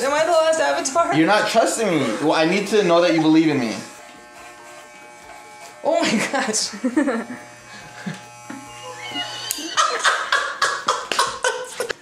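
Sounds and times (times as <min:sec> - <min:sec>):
electric hair clippers buzzing: 0:00.0 - 0:12.0
loud laughter: 0:09.0 - 0:12.0.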